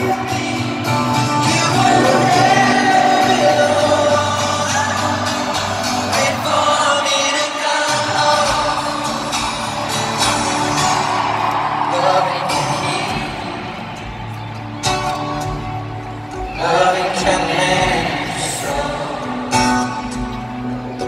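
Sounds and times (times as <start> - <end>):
man singing: 0.0 - 10.2, 11.8 - 13.7, 16.4 - 20.1
acoustic guitar: 0.0 - 21.0.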